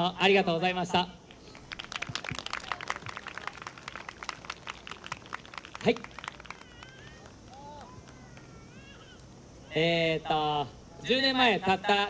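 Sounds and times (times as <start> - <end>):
audience clapping: 1.4 - 8.5.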